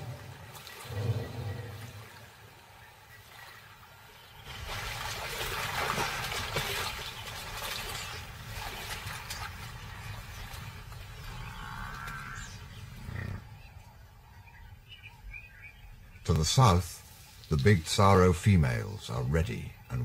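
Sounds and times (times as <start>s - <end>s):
lionesses growling: 8.0s - 14.1s.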